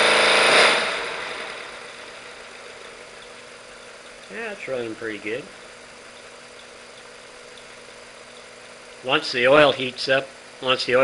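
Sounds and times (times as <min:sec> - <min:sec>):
model engine running: 0:00.0 - 0:11.0.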